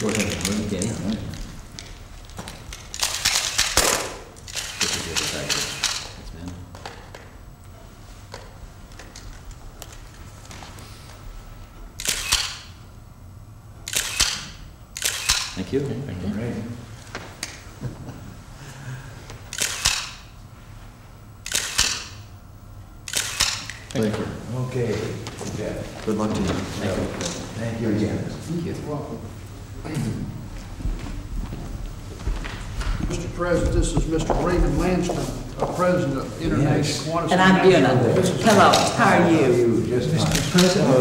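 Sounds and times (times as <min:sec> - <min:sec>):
camera shutters clicking rapidly: 0:02.7 - 0:06.2, 0:12.0 - 0:12.7, 0:13.9 - 0:15.6, 0:19.5 - 0:20.3, 0:21.4 - 0:22.2, 0:23.0 - 0:24.0.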